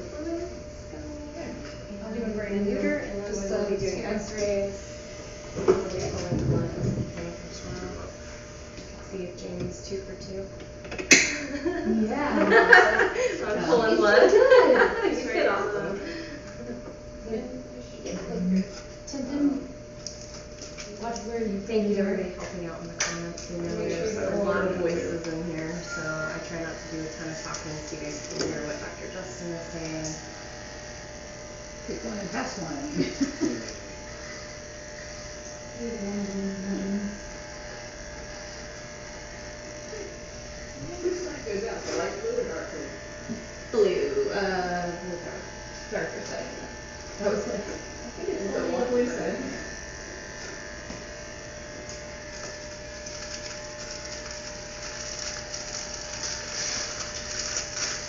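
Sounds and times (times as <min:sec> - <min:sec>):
electric clippers buzzing: 0:00.0 - 0:58.0.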